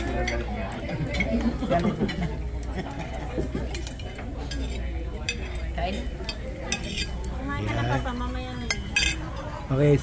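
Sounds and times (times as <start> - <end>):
tableware clinking: 0.0 - 10.0.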